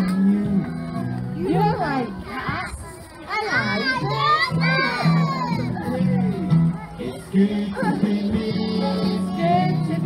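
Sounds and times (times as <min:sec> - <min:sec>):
guitar accompaniment: 0:00.0 - 0:02.6, 0:03.3 - 0:10.0
children singing together: 0:03.3 - 0:05.9, 0:06.9 - 0:10.0.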